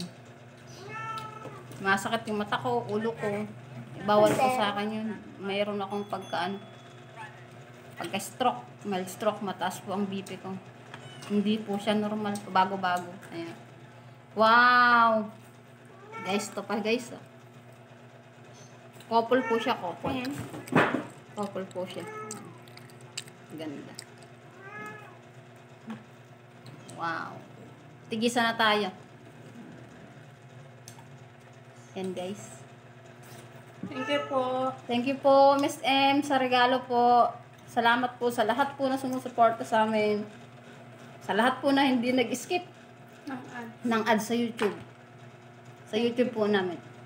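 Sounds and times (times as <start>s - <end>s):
cat meowing: 0.8s - 1.6s, 15.9s - 16.4s, 24.6s - 25.2s.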